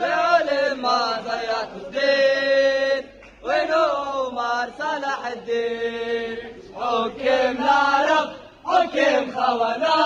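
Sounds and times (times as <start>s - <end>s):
football supporters chanting: 0.0s - 10.0s.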